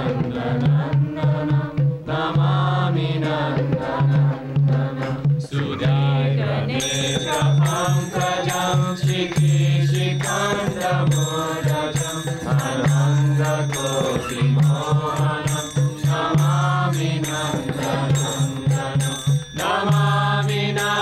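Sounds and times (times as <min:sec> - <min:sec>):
group chanting: 0:00.0 - 0:21.0
steady rhythmic beat: 0:00.0 - 0:21.0.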